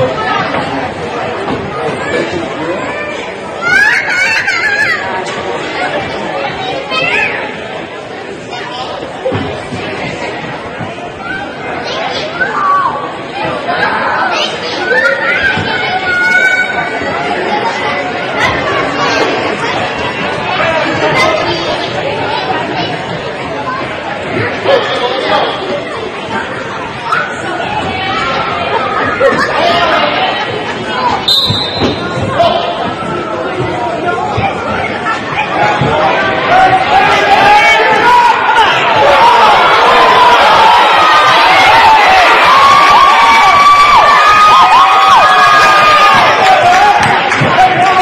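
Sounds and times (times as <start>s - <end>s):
many voices chattering and calling: 0.0s - 48.0s.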